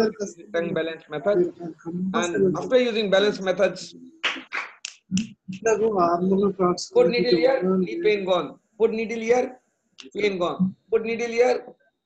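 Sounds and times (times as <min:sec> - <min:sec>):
man speaking over online call: 0:00.0 - 0:01.6, 0:02.2 - 0:11.7.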